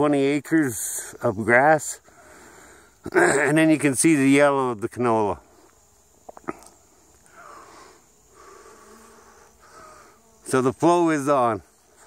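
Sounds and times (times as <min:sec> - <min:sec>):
honeybees buzzing in flight: 0:05.2 - 0:12.0.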